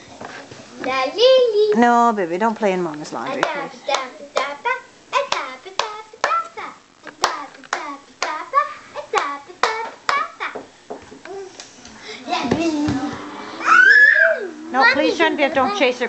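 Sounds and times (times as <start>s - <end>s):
child chanting: 3.2s - 15.9s
child clapping hands: 3.4s - 4.6s, 5.3s - 8.5s, 9.1s - 10.7s.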